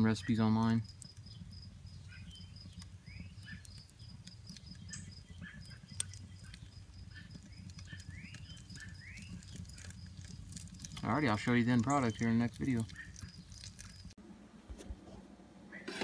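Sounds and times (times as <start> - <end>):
birds chirping: 0.0 - 14.2
burning charcoal crackling: 0.0 - 16.0.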